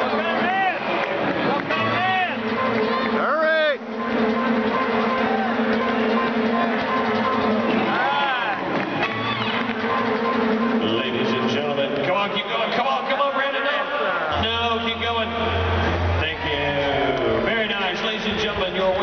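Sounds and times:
crowd voices: 0.0 - 19.0
music over arena speakers: 0.0 - 19.0.

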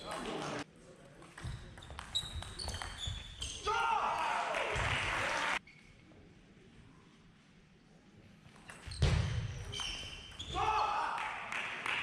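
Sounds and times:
sports hall hum: 0.0 - 12.0
crowd cheering: 3.7 - 5.6.

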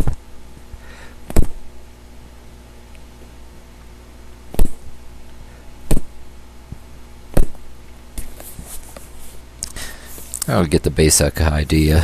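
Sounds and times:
thuds on cushion pad: 0.0 - 0.2, 1.3 - 1.7, 4.5 - 5.0, 5.8 - 8.3.

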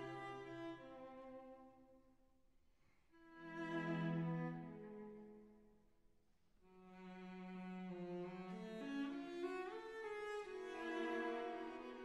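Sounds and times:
slow bowed strings music: 0.0 - 1.7, 3.2 - 5.5, 6.7 - 12.0.

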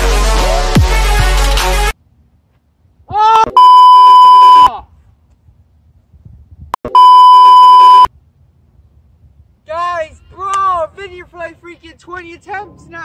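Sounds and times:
man shouting: 3.1 - 3.6, 9.7 - 13.0
censor bleeps: 3.6 - 4.7, 6.8 - 8.1.

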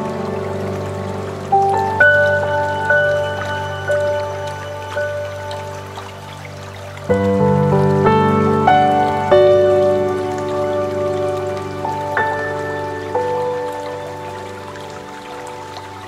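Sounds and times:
running water: 0.0 - 16.0
slow calm piano music: 0.0 - 16.0.

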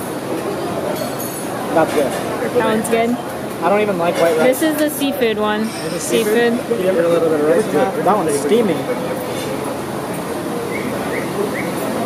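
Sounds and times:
faint distant chatter: 0.0 - 12.0.

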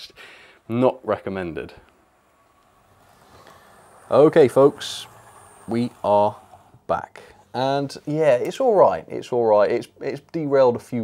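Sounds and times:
model train running on track: 0.4 - 6.8.

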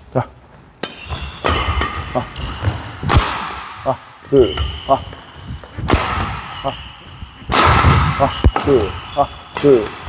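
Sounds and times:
shoes squeaking on court floor: 0.4 - 3.6, 4.2 - 10.0.

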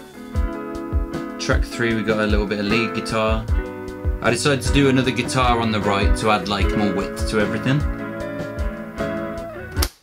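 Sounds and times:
drums: 0.0 - 9.6
layered electric guitars: 0.2 - 9.8.

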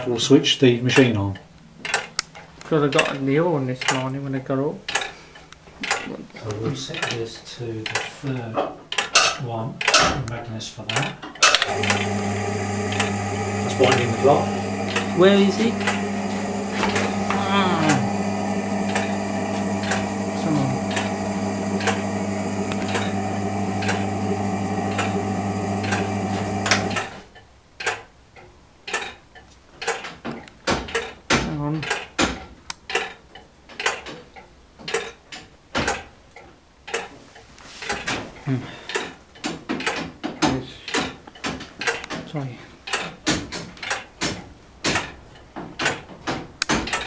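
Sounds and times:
electric winding motor humming: 11.6 - 27.2
clock mechanism clicks and knocks: 28.9 - 29.2, 38.9 - 42.2.

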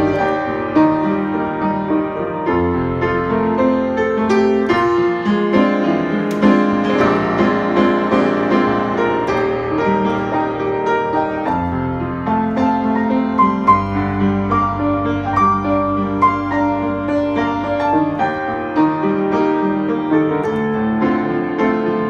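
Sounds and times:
upright piano playing chords: 0.0 - 22.0.

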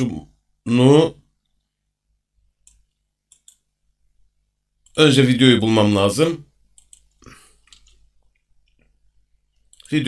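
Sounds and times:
computer mouse clicks: 2.6 - 3.7, 6.7 - 10.0.

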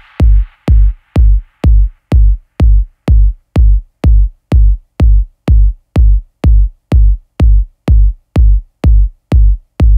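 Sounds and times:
techno kick drum: 0.0 - 9.9.

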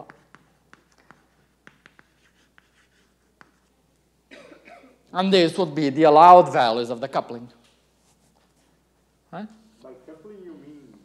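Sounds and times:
chalk writing on blackboard: 0.0 - 3.8.

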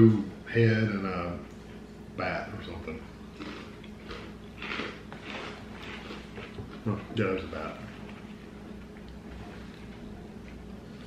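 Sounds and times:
dry cereal being chewed: 3.3 - 11.0.

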